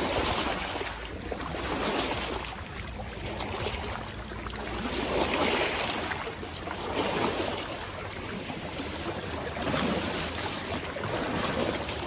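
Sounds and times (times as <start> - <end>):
waves lapping over rocks: 0.0 - 12.0.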